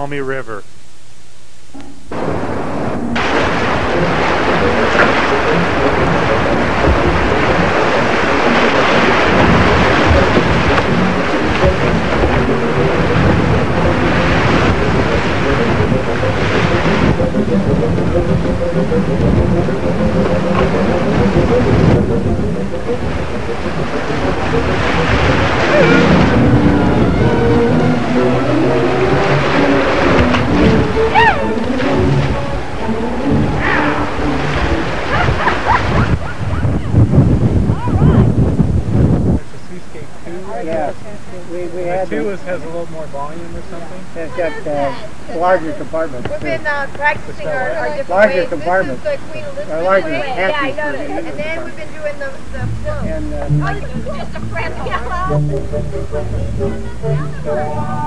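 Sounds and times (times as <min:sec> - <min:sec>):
wind on microphone: 0:01.8 - 0:58.0
whitewater rushing: 0:02.1 - 0:58.0.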